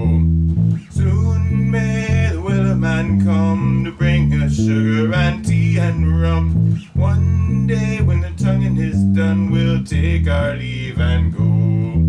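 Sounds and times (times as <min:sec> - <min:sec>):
man singing: 0:00.0 - 0:00.2, 0:00.8 - 0:12.0
electric bass guitar: 0:00.0 - 0:12.0.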